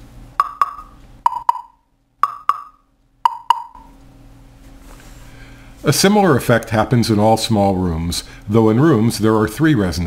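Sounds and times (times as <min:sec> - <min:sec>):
stick hitting plastic blocks: 0:00.4 - 0:03.8.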